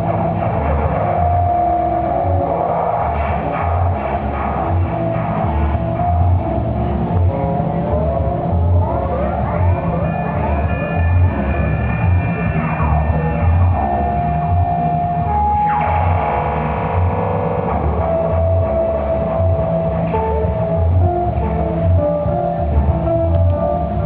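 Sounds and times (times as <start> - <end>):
electric guitar playing: 0.0 - 24.0
electronic beat with pulsing bass: 0.0 - 24.0.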